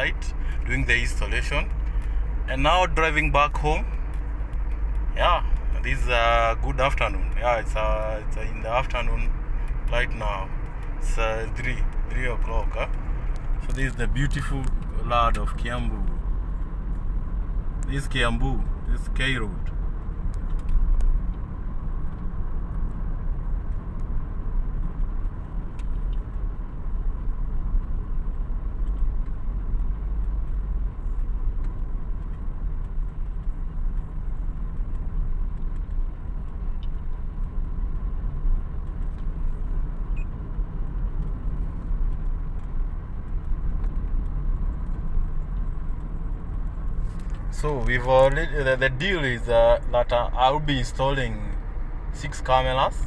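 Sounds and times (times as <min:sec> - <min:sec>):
car engine and tyre rumble: 0:00.0 - 0:53.0.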